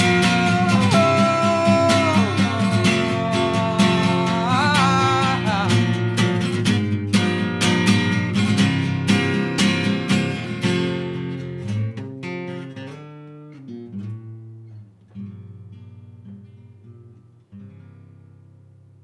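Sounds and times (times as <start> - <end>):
acoustic guitar strumming chords: 0.0 - 18.9.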